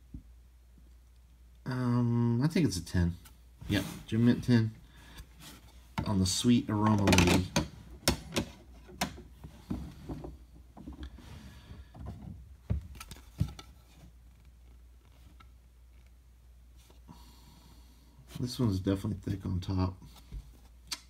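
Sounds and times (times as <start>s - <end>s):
hard plastic cases clicking: 6.8s - 9.3s.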